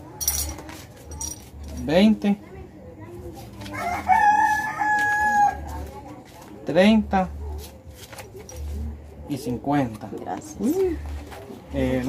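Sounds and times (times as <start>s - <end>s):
rooster crowing: 3.7s - 5.7s.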